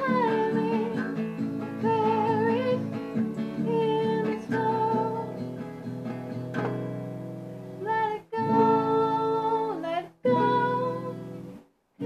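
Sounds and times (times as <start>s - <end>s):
strummed acoustic guitar: 0.0s - 11.6s.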